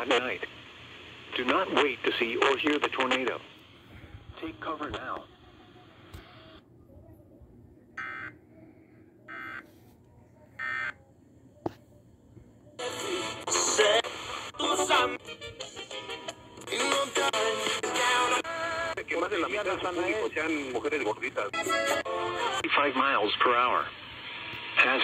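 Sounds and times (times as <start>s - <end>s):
radio tuning across stations: 0.0s - 6.6s, 12.8s - 15.2s, 16.6s - 21.6s.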